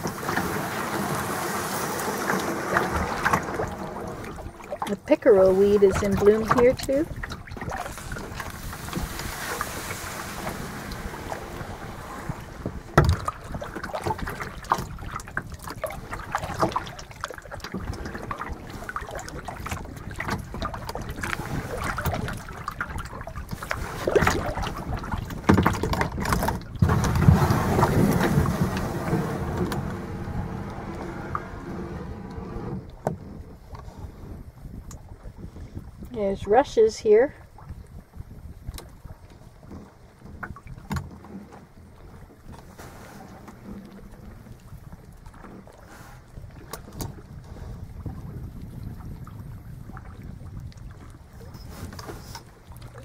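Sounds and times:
kayak knocks: 0:00.0 - 0:33.8, 0:38.1 - 0:47.4
water splashing off paddle: 0:00.0 - 0:34.8, 0:37.6 - 0:53.0.

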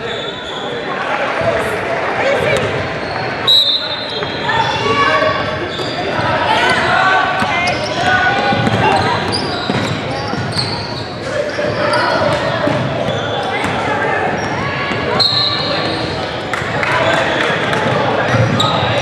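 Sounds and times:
players and spectators shouting: 0:00.0 - 0:19.0.

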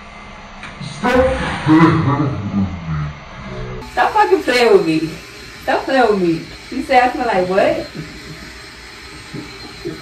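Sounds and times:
room noise rumble and hiss: 0:00.0 - 0:10.0.

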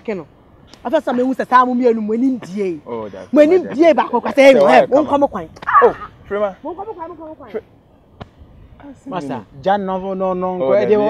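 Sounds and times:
person shouting exclamations: 0:05.6 - 0:06.2.

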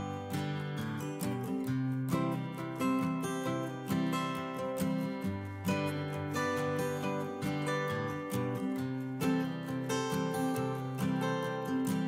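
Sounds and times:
strummed acoustic guitar music: 0:00.0 - 0:12.0.

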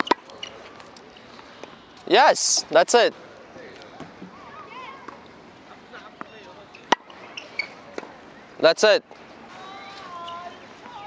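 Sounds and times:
faint distant voices: 0:00.0 - 0:11.0
tennis ball struck: 0:06.9 - 0:07.3, 0:07.9 - 0:08.2.

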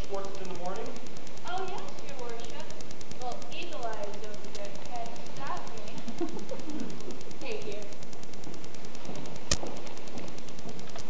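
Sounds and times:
fast ticking buzz: 0:00.0 - 0:11.0
tape hiss: 0:00.0 - 0:11.0.

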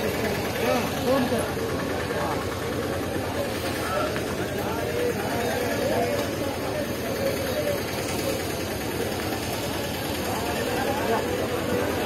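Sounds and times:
outdoor market background noise: 0:00.0 - 0:12.0.

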